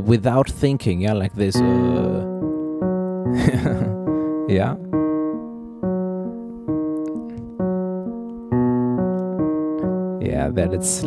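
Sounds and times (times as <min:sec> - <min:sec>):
piano broken chords: 0:00.0 - 0:11.0.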